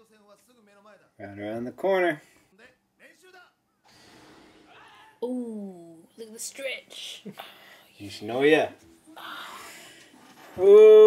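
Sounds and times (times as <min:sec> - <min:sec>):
faint cartoon dialogue: 0:04.5 - 0:07.3.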